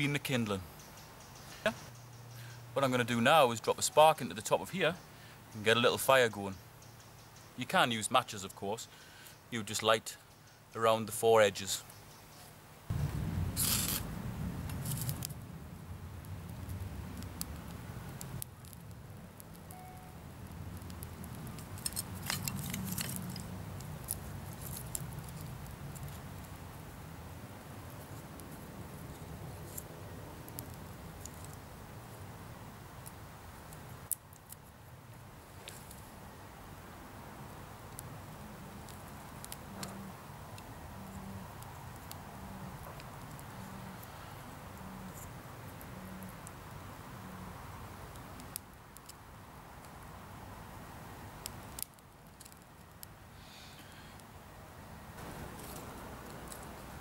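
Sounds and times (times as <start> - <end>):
low rumble: 12.9 - 17.3
fire steel scraping: 13.0 - 15.4, 20.8 - 26.5.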